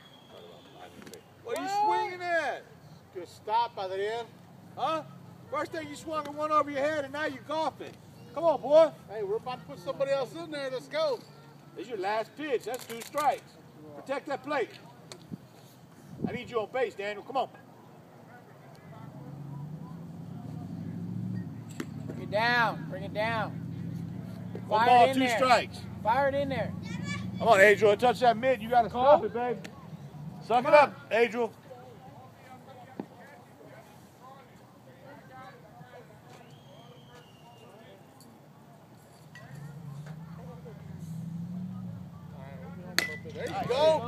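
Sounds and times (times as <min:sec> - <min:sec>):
distant voices chattering: 0:00.0 - 0:44.0
vehicle engine hum: 0:18.1 - 0:32.7, 0:38.4 - 0:44.0
baseball hitting with sharp knock: 0:21.7 - 0:22.2, 0:42.9 - 0:43.8.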